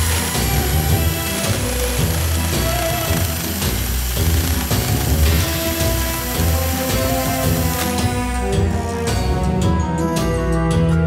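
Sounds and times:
power drill boring into wood: 0.0 - 9.4
background music: 0.0 - 11.0.

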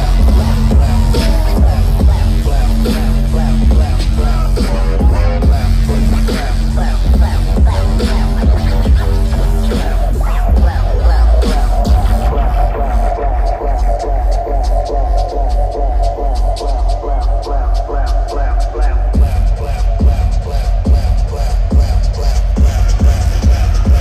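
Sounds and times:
electronic bass music: 0.0 - 24.0.

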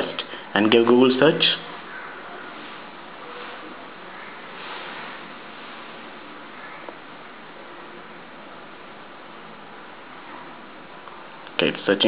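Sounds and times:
steady room hiss: 0.0 - 12.0.

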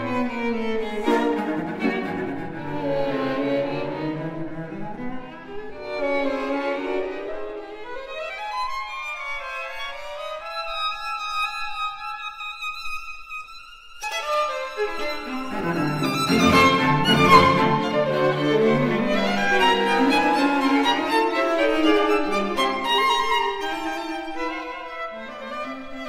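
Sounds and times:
string quartet playing: 0.0 - 9.4, 14.0 - 26.0.

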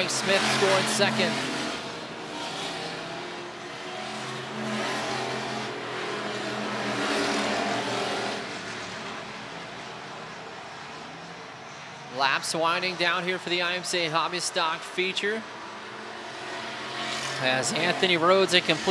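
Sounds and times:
race car engines running hard: 0.0 - 18.9.

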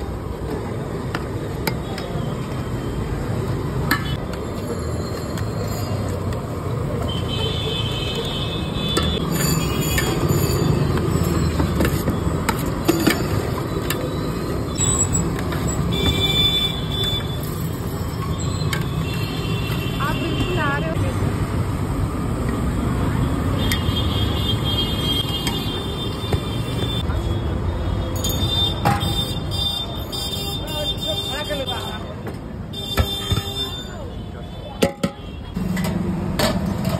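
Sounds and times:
rumble of passing vehicles: 0.0 - 36.9
vehicle horns tooting: 14.8 - 17.5, 18.5 - 21.0, 23.6 - 27.4, 32.7 - 35.6.

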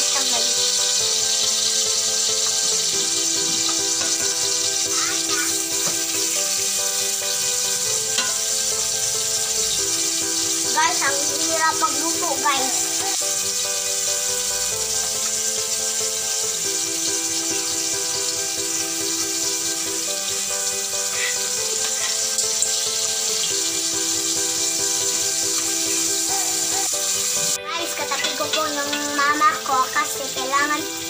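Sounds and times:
background music of held chords: 0.0 - 31.0
fish frying in hot oil: 0.0 - 31.0.

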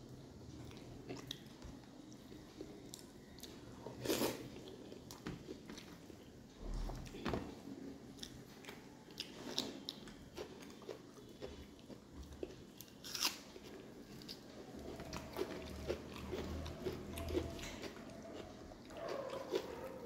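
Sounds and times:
close chewing: 8.1 - 20.0.

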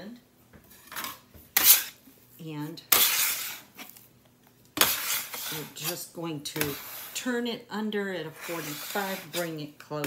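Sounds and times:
metal scraper rasping on wood: 1.6 - 2.0, 2.9 - 3.6, 4.8 - 6.0, 6.6 - 7.2, 8.4 - 9.6.

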